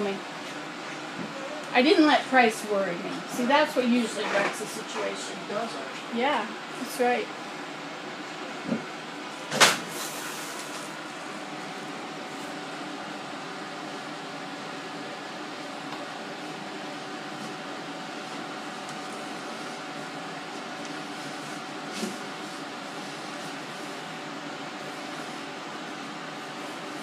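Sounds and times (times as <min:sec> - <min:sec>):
steady mechanical hum: 0:00.0 - 0:27.0.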